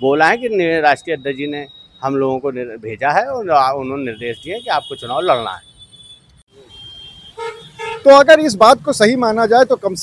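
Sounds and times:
vehicle horn toots: 3.8s - 8.2s.

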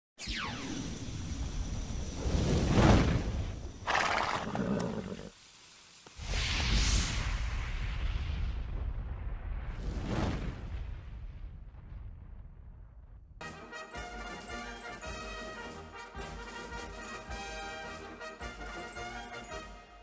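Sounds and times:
horse neigh: 3.9s - 5.4s.

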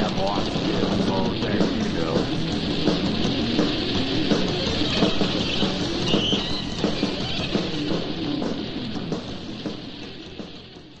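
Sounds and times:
distorted death metal band: 0.0s - 11.0s.

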